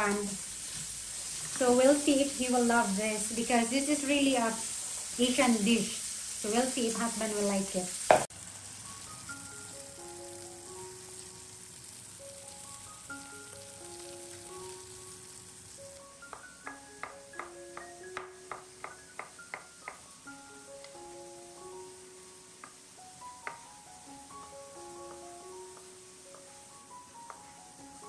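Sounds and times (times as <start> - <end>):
light background music: 1.5 - 7.8, 8.7 - 28.0.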